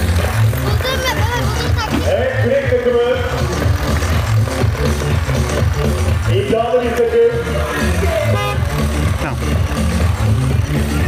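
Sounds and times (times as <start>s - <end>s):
music with heavy bass beat: 0.0s - 11.0s
car horn toot: 8.1s - 8.9s.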